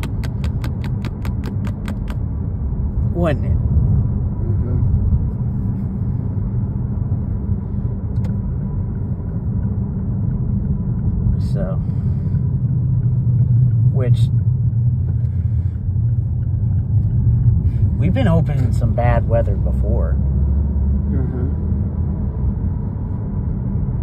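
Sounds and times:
car interior road rumble: 0.0s - 24.0s.

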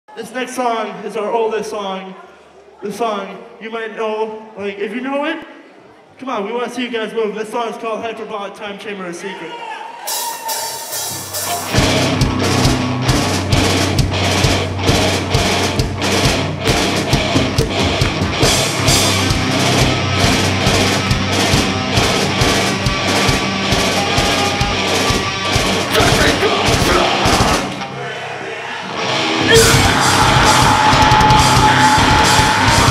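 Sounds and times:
live heavy rock band: 10.1s - 28.0s, 28.8s - 32.9s.

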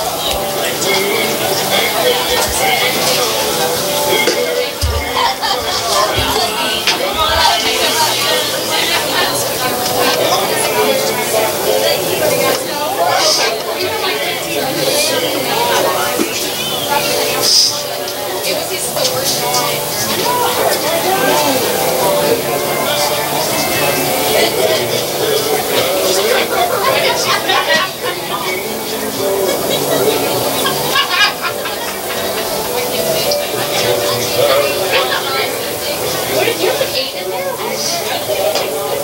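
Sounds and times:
spectators chattering: 0.0s - 39.0s.

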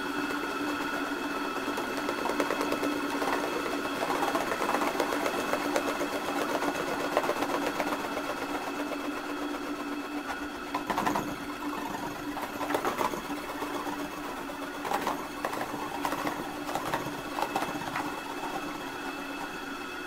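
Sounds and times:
rapid mechanical clatter: 0.0s - 20.0s.

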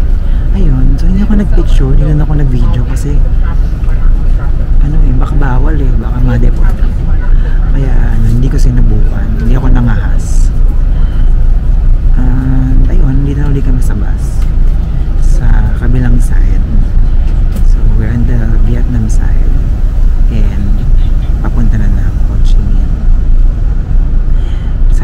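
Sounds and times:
bus engine rumble: 0.0s - 25.0s
man talking: 0.3s - 10.6s, 12.0s - 14.4s, 15.2s - 23.0s.

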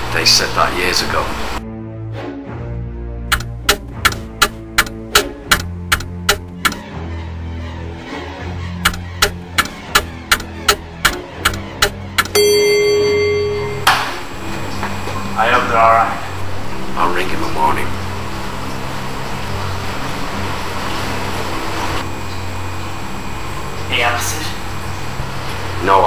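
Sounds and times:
music of held low notes: 8.4s - 26.0s
clock ticking loudly: 8.8s - 12.8s
steady higher tone: 12.4s - 14.6s.

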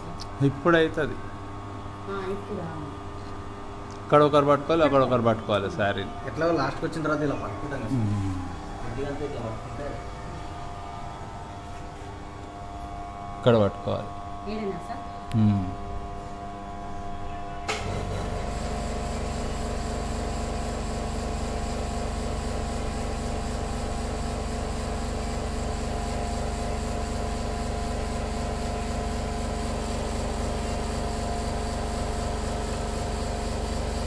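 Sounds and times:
polishing machine hum and whir: 4.2s - 34.0s.

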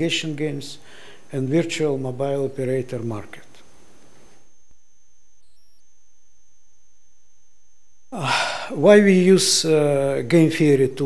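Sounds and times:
low electrical hum: 0.0s - 11.0s
thin high-pitched whine: 1.4s - 11.0s.

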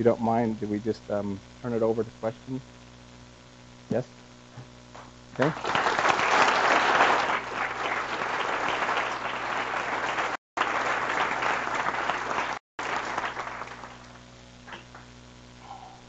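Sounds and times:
audience applauding: 5.4s - 15.1s.

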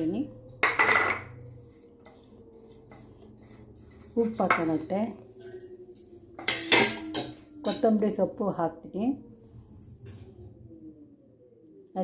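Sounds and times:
steel kitchenware clattering: 0.5s - 5.8s, 6.4s - 8.0s.

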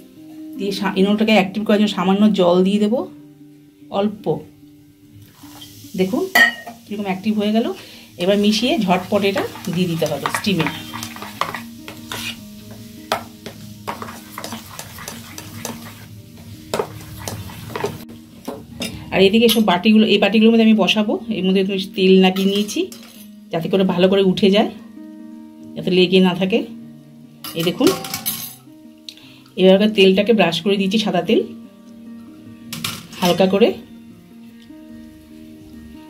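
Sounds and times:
soft background music: 0.0s - 36.0s
spoon clinking against bowl: 6.4s - 6.8s
spoon scraping steel bowl: 9.0s - 12.5s, 13.9s - 16.1s, 16.8s - 18.0s, 22.4s - 23.3s
steel cups clinking and scraping: 27.5s - 28.6s.

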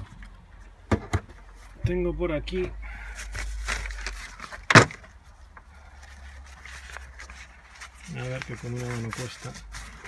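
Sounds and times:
rustling of cables and fabric bag: 3.0s - 4.7s, 5.3s - 10.0s.

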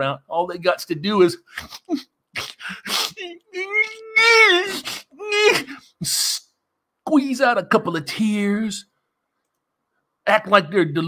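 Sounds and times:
man mock crying wail: 1.4s - 6.4s.

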